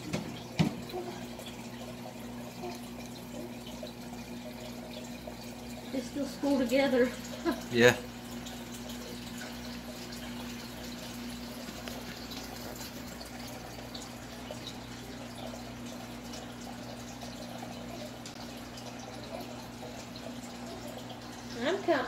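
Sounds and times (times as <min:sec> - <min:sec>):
aquarium bubbles: 0:00.0 - 0:22.0
water trickling: 0:00.0 - 0:22.0.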